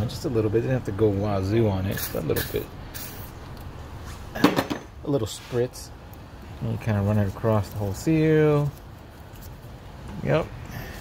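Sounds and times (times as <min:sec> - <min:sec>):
tools clinking and knocking: 0:04.4 - 0:05.0.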